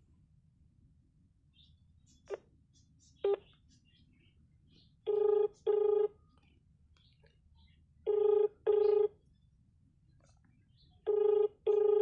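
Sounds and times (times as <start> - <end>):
phone ringback tone: 5.1 - 6.2, 8.1 - 9.1, 11.1 - 12.0.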